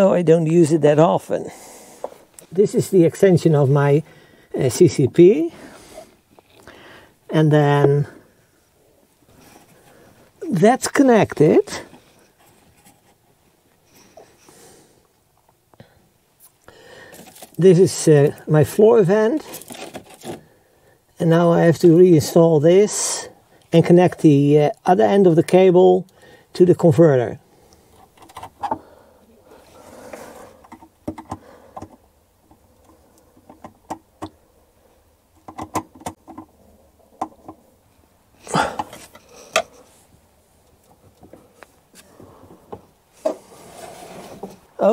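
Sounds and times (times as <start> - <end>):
rustling and scraping of cable: 9.3 - 14.6, 16.4 - 20.7, 27.6 - 34.3, 38.6 - 44.9
clicks of handling cables: 35.4 - 36.5
rustling: 38.6 - 44.9.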